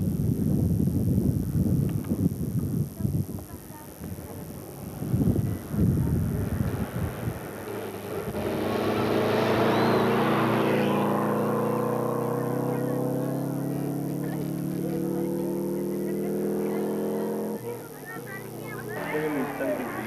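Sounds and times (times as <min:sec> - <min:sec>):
rally car engine passing: 0:04.6 - 0:20.0.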